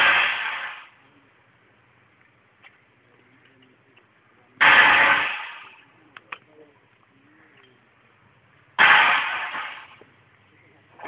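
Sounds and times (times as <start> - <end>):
loud explosion blast: 4.6 - 5.7, 8.8 - 10.0.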